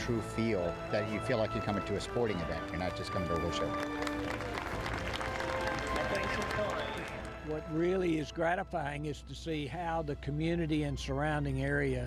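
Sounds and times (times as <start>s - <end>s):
background music: 0.0s - 12.0s
crowd clapping: 0.4s - 8.0s.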